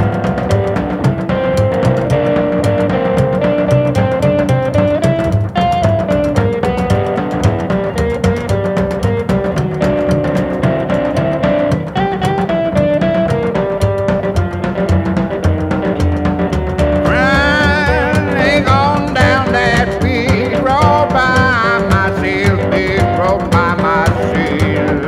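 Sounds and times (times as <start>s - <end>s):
instrumental blues music: 0.0s - 25.0s.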